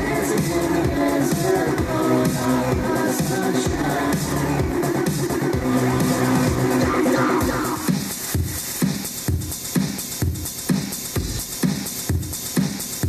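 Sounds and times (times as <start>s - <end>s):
electronic dance music: 0.0s - 13.0s
kick drum beating: 7.4s - 13.0s.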